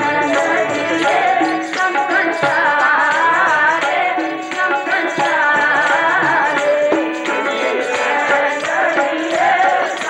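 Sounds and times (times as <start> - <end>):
harmonium held notes: 0.0 - 10.0
woman singing: 0.0 - 10.0.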